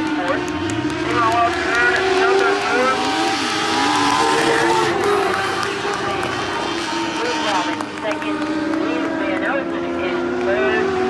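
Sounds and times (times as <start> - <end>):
race car engines passing: 0.0 - 11.0
voices: 0.0 - 11.0.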